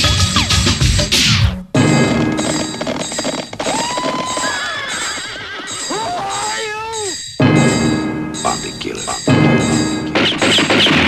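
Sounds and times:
horse whinny: 3.6s - 7.0s.

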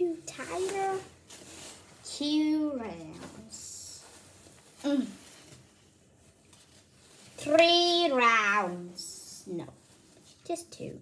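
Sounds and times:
curtain fabric rustling: 0.0s - 11.0s.

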